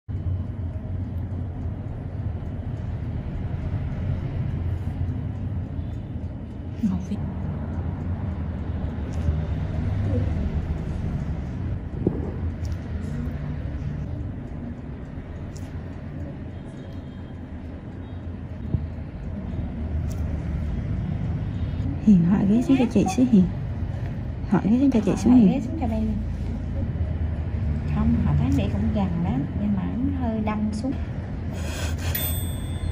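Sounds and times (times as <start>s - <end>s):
low rumbling hum: 0.1s - 32.9s
faint ticks: 0.2s - 11.0s.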